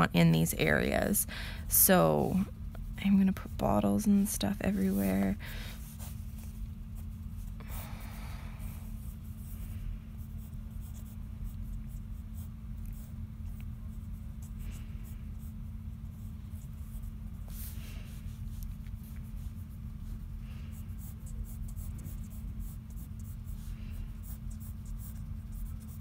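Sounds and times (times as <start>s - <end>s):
steady low hum: 0.0s - 26.0s
pencil scratching on paper: 8.9s - 17.8s, 20.8s - 26.0s.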